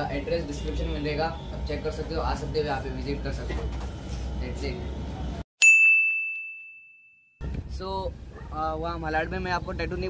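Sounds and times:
high bell ding: 5.6 - 7.4.

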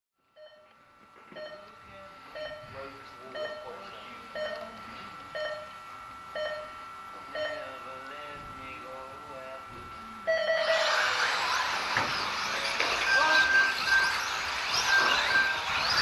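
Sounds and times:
steady high-pitched tone: 0.4 - 16.0
electronic timing beeps: 2.4 - 3.7, 4.3 - 4.7, 5.4 - 5.7, 6.3 - 7.7, 10.3 - 16.0.

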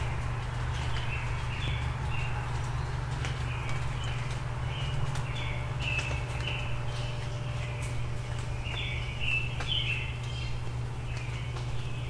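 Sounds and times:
songbird calling: 0.0 - 12.0
steady low rumble: 0.0 - 12.0.

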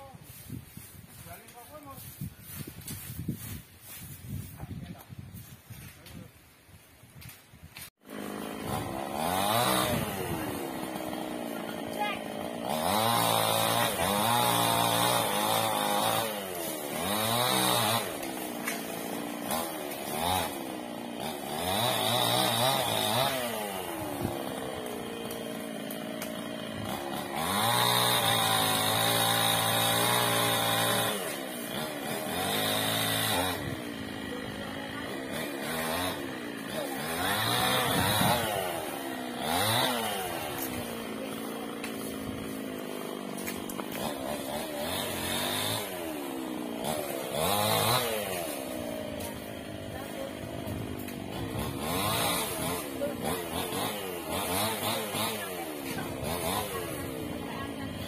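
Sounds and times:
chainsaw revving and idling: 8.0 - 58.0.

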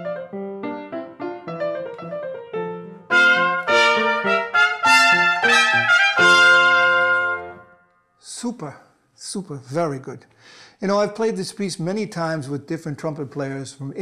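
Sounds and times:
piano accompaniment: 0.0 - 7.8
trumpet playing sustained notes: 3.1 - 7.9.

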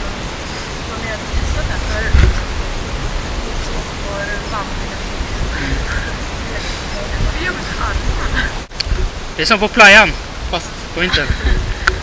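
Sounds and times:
wind buffeting microphone: 0.0 - 9.4, 10.0 - 12.0.

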